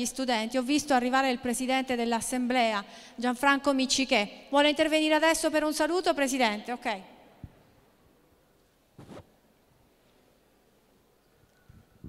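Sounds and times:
microphone handling rustle: 0:09.0 - 0:09.4.

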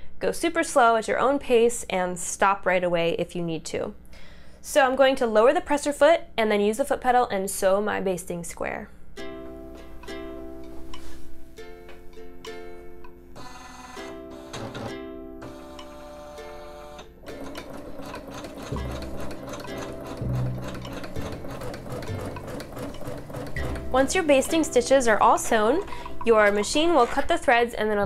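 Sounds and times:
background music: 0:09.2 - 0:28.0
sewing machine stitching rapidly: 0:17.2 - 0:25.0.

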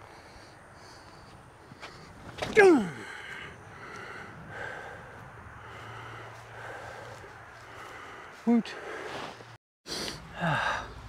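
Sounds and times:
man breathing hard: 0:00.0 - 0:11.0
man grunting: 0:02.5 - 0:03.2, 0:10.3 - 0:10.9.

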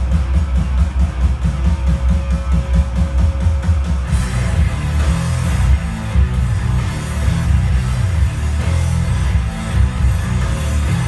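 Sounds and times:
rock song through speakers: 0:00.0 - 0:11.0.

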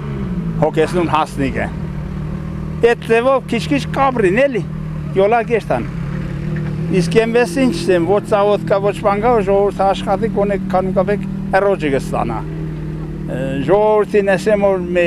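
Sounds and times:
man talking: 0:00.6 - 0:01.8, 0:02.8 - 0:05.9, 0:06.9 - 0:12.5, 0:13.3 - 0:15.0.

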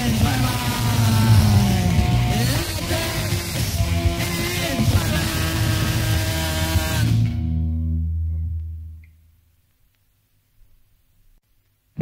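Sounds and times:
punk rock band: 0:00.0 - 0:07.7
distorted electric guitars: 0:00.0 - 0:09.2.

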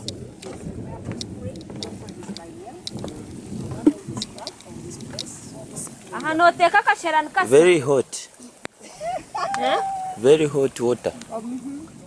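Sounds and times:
murmur of people talking: 0:00.0 - 0:12.0.

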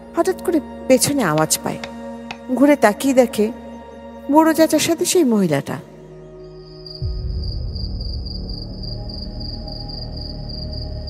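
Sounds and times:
low dark music drone: 0:05.9 - 0:11.0
cricket chirping: 0:06.4 - 0:11.0.

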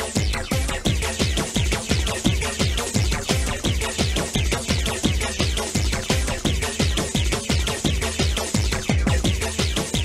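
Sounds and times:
fast kick drum: 0:00.0 - 0:10.0.

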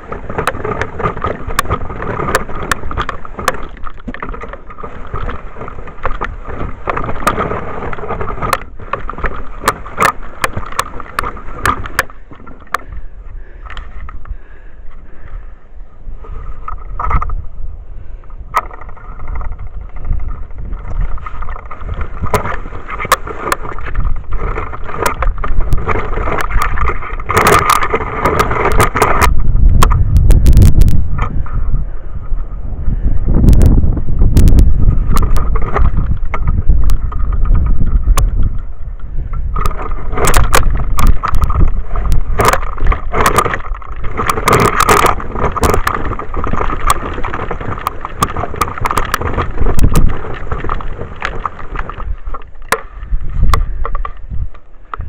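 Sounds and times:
snow plow rumbling: 0:00.0 - 0:12.8, 0:39.5 - 0:53.4
knocking and rattling clicks: 0:00.0 - 0:13.0, 0:13.6 - 0:14.3, 0:18.5 - 0:31.6, 0:34.4 - 0:55.0.

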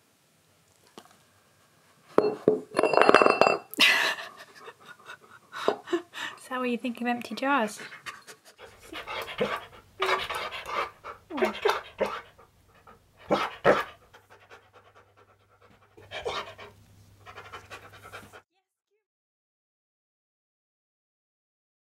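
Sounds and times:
dog panting: 0:04.1 - 0:06.5, 0:07.3 - 0:18.4.

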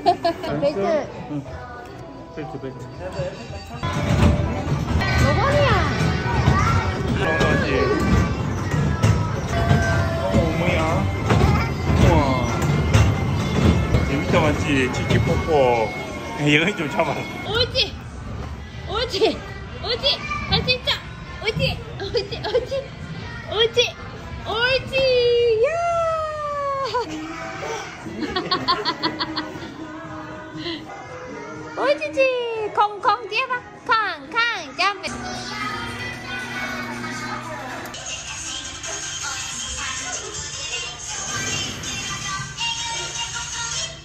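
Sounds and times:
children chattering: 0:02.9 - 0:17.5, 0:29.4 - 0:32.2, 0:34.6 - 0:43.7
music with sung vocals: 0:35.1 - 0:44.0.

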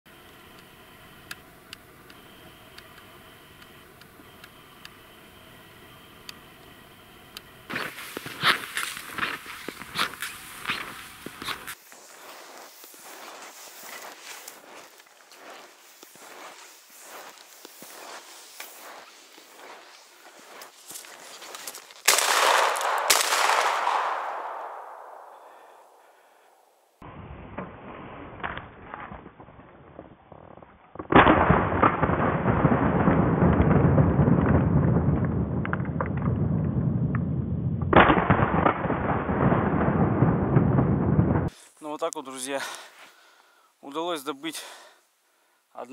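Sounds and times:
footsteps crunching through snow: 0:07.7 - 0:26.4
shotgun shot echoing: 0:22.0 - 0:26.6
wind rumble on microphone: 0:32.6 - 0:38.0, 0:39.0 - 0:41.5.

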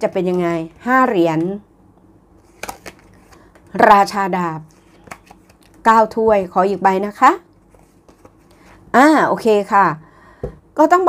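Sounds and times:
woman speaking: 0:00.0 - 0:01.7, 0:03.7 - 0:04.7, 0:05.8 - 0:07.5, 0:08.9 - 0:10.0, 0:10.8 - 0:11.0
cards handled and laid down: 0:02.5 - 0:03.7, 0:04.9 - 0:05.7, 0:07.7 - 0:08.7.

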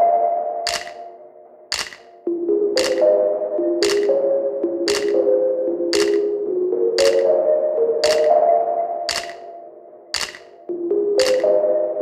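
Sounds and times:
clap-like beat: 0:00.7 - 0:01.0, 0:01.7 - 0:02.1, 0:02.8 - 0:03.1, 0:03.8 - 0:04.2, 0:04.9 - 0:05.2, 0:06.0 - 0:06.3, 0:07.0 - 0:07.3, 0:08.0 - 0:08.4, 0:09.1 - 0:09.4, 0:10.2 - 0:10.5, 0:11.2 - 0:11.6.

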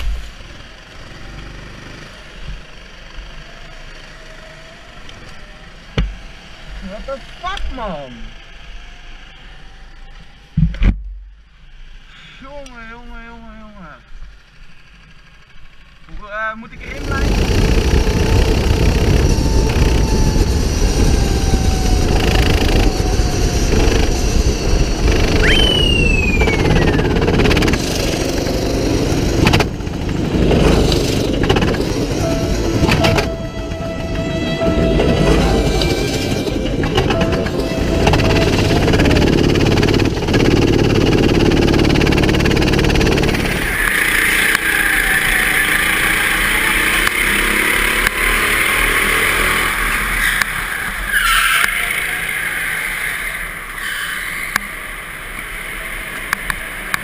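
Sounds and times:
go-kart engine revving: 0:00.0 - 0:10.6, 0:13.6 - 0:57.0.

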